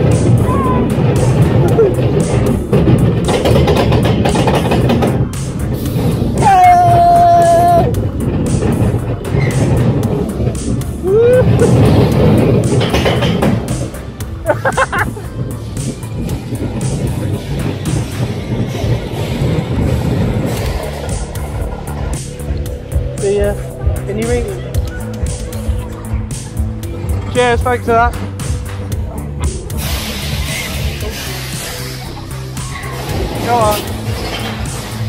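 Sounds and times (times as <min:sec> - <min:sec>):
loud fairground music: 0:00.0 - 0:35.0
roller coaster rumble: 0:00.0 - 0:35.0.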